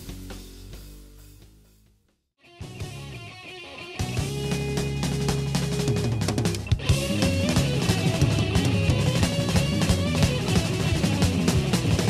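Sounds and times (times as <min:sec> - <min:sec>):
hard rock band playing: 0:00.0 - 0:01.5, 0:02.4 - 0:12.0.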